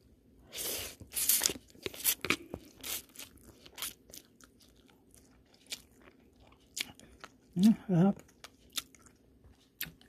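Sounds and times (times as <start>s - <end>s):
person chewing food: 0.5s - 10.0s.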